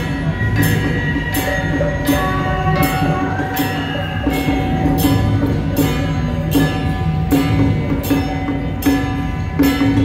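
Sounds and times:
hand cymbals clashing: 0.0s - 10.0s
small hand gongs ringing: 0.0s - 10.0s.

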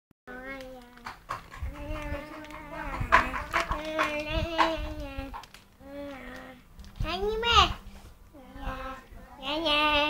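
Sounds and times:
child singing held notes: 1.6s - 6.6s.

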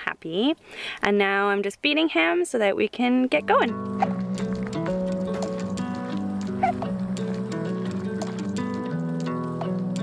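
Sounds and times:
background music: 3.4s - 10.0s
infant hiccuping: 6.6s - 7.0s.

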